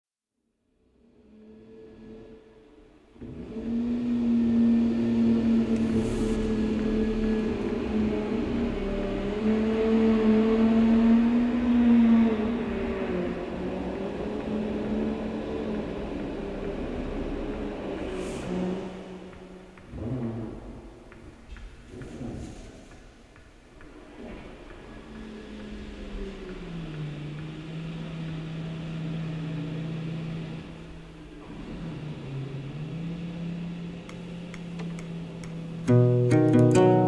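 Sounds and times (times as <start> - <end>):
wavering droning tones: 1.3 - 20.8
airy swooshes: 4.8 - 9.7
hiss: 5.1 - 7.4, 18.0 - 19.5.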